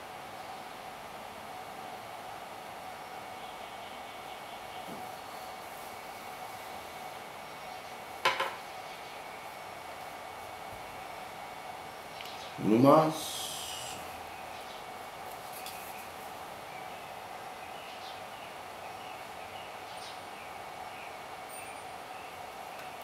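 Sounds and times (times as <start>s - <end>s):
workshop hum: 0.0s - 17.4s.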